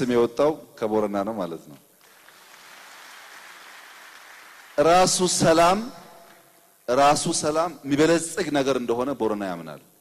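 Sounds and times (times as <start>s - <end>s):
faint audience applause: 2.0s - 5.2s.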